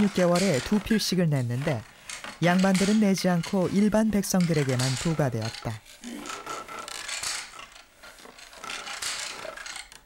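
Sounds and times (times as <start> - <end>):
hand loom swishing: 0.0 - 10.0.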